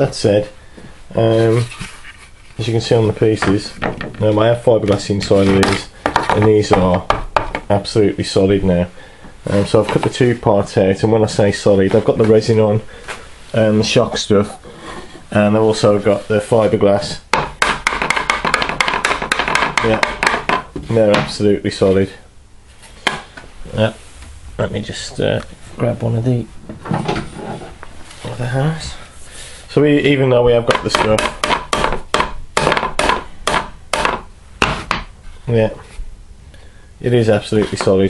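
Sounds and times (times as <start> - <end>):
hard knocks on workbench: 17.3 - 21.3, 30.7 - 35.1.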